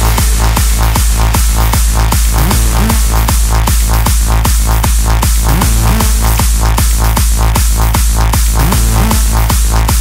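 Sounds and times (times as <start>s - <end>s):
hardstyle dance music: 0.0s - 10.0s.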